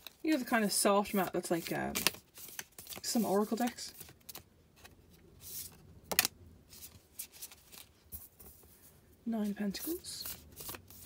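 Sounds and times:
cards shuffling: 0:01.0 - 0:08.6, 0:09.7 - 0:11.0.

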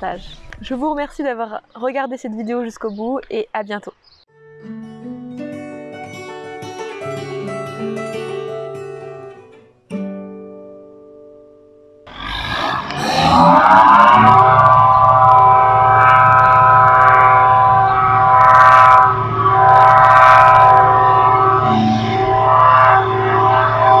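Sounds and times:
low hum: 0:12.1 - 0:24.0
siren rising in pitch: 0:12.1 - 0:24.0.

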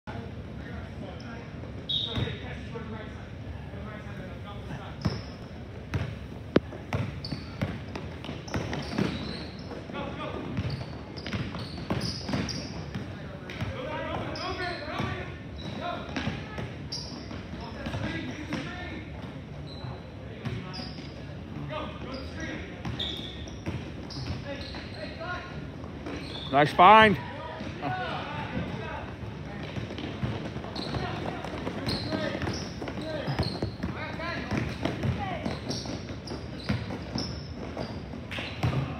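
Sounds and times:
voices in a gym: 0:00.0 - 0:38.9
basketball bouncing on hardwood: 0:29.6 - 0:37.8.

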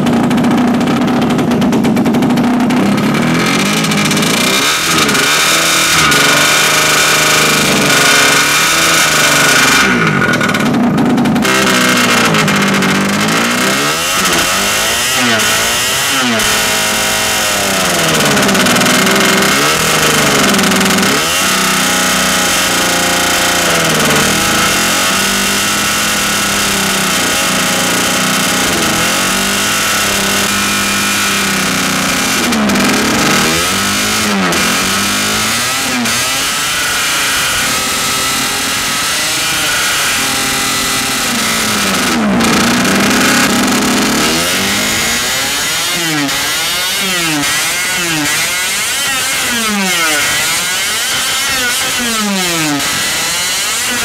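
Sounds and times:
two-stroke engine revving unevenly: 0:00.0 - 0:54.0.

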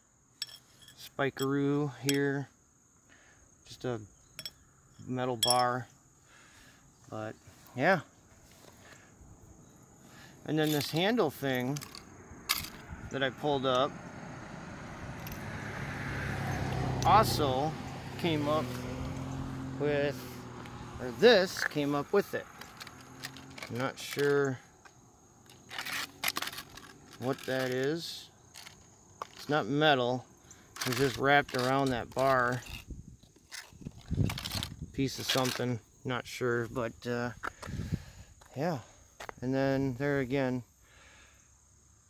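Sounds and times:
road vehicle engine hum: 0:02.1 - 0:35.2
metal strip scraping on concrete: 0:25.5 - 0:29.6, 0:30.8 - 0:35.7.

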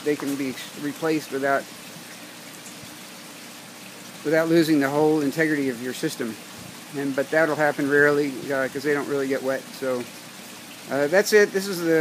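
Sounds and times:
water rushing: 0:00.0 - 0:12.0.

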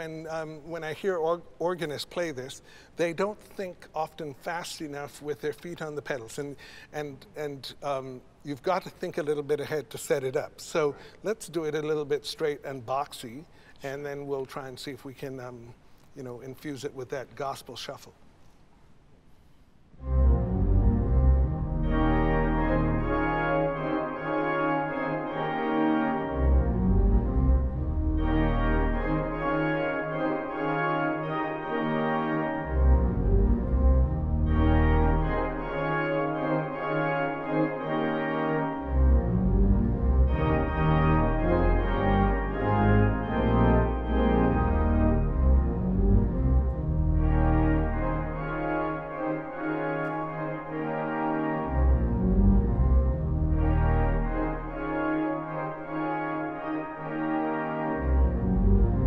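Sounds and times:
church organ chords: 0:20.0 - 0:59.0
low organ pedal bass notes: 0:20.0 - 0:59.0.

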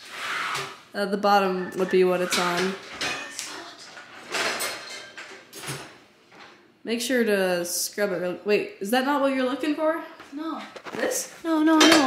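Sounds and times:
dishwasher rack rolling out: 0:00.0 - 0:00.8, 0:01.5 - 0:06.6
dishes rattling and clinking: 0:01.7 - 0:06.6.

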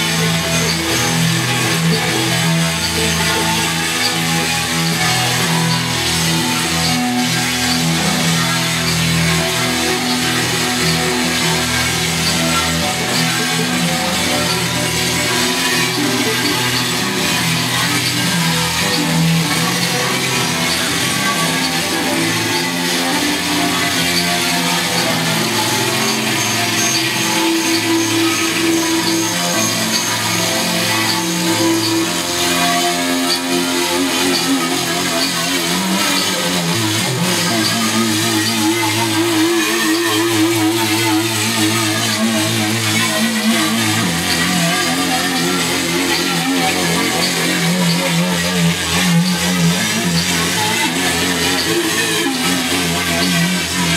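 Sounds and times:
electronic backing: 0:00.0 - 0:53.9.

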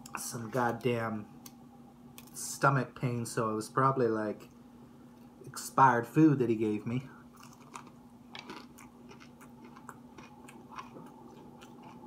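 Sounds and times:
person chewing crunchy food: 0:07.3 - 0:12.0.

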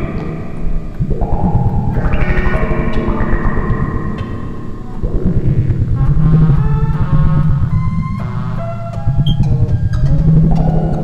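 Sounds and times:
gliding high synth tones: 0:00.0 - 0:09.4
fast pulsing synth bass: 0:00.0 - 0:11.0.

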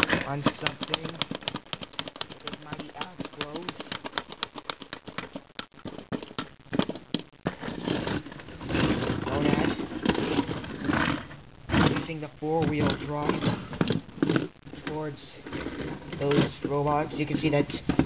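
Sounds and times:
plastic toy bricks clattering: 0:00.0 - 0:11.0
toys scraping on wooden floor: 0:07.5 - 0:18.0.

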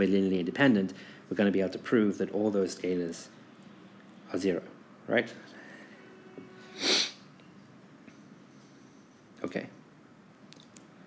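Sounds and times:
person's sharp breath burst: 0:06.7 - 0:07.2.

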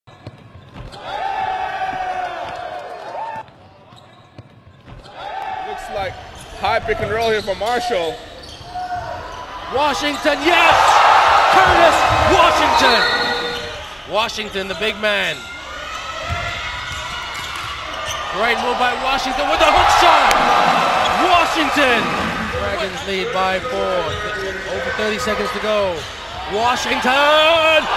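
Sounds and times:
indoor arena background noise: 0:00.0 - 0:27.9.

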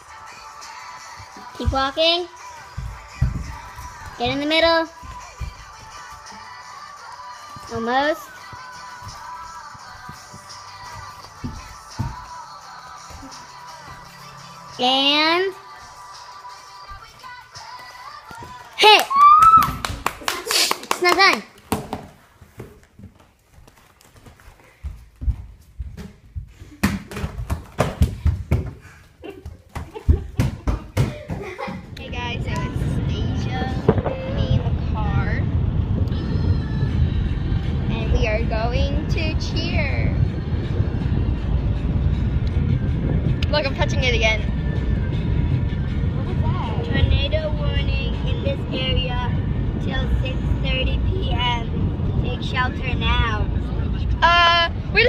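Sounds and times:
children tumbling on floor mat: 0:21.6 - 0:31.9
car interior rumble: 0:32.0 - 0:55.0.

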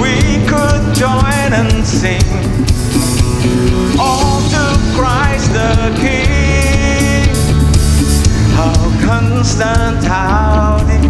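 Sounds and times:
wavering lead melody: 0:00.0 - 0:10.0
drum kit with cymbals: 0:00.0 - 0:11.0
live band playing: 0:00.0 - 0:11.0.

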